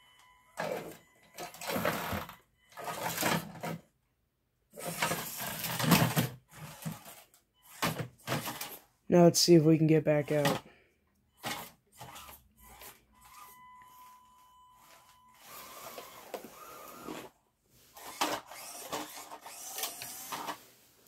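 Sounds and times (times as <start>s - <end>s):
electric motor and gears whirring: 4.8s - 8.8s, 9.9s - 10.7s, 11.3s - 20.7s
thin motor whine: 14.9s - 17.3s.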